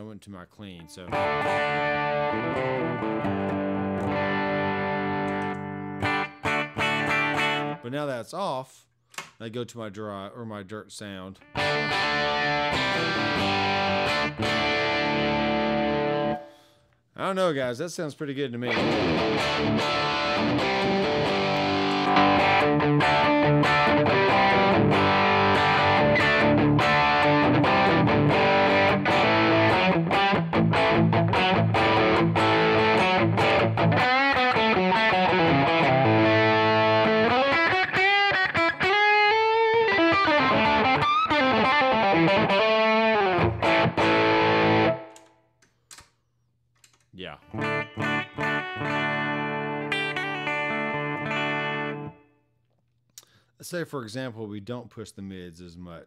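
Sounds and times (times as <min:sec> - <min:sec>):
overdriven electric guitar: 0:01.1 - 0:07.8, 0:11.4 - 0:16.7, 0:18.7 - 0:45.3, 0:47.5 - 0:52.3.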